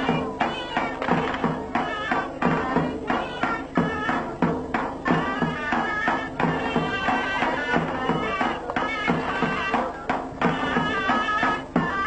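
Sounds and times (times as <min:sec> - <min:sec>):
drum beat: 0:00.0 - 0:12.0.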